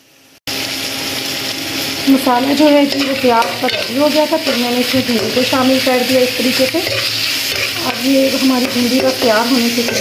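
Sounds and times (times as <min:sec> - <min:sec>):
okra sizzling in a pan: 0:00.0 - 0:10.0.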